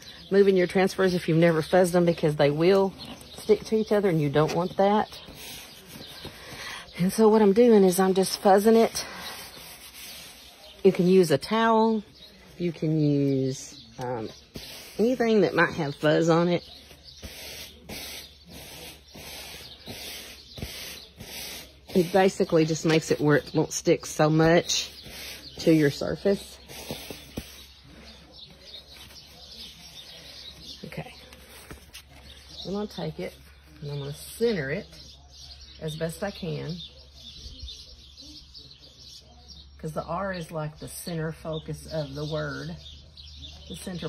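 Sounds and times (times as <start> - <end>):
songbirds chirping: 0.0 - 44.0
stencil rubbing on fabric: 17.1 - 22.5.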